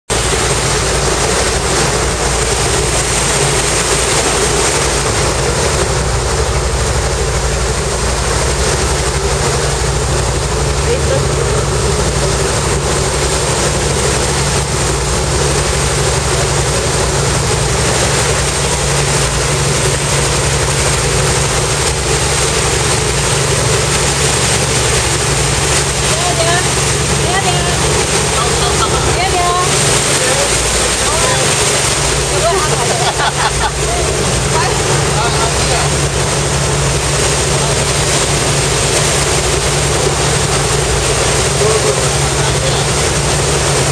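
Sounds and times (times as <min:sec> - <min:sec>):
boat engine running: 0:00.0 - 0:43.9
wake rushing: 0:00.1 - 0:43.9.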